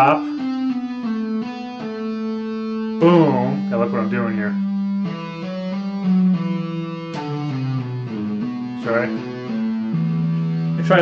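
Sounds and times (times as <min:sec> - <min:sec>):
person speaking a word: 0:00.0 - 0:00.3, 0:03.0 - 0:04.5
electric guitar legato lick: 0:00.0 - 0:11.0.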